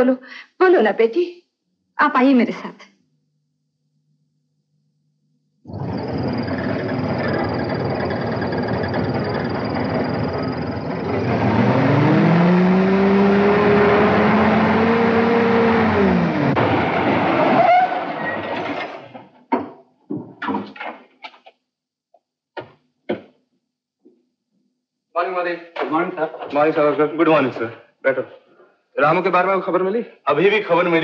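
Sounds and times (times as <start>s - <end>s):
jeep engine running: 5.7s - 17.8s.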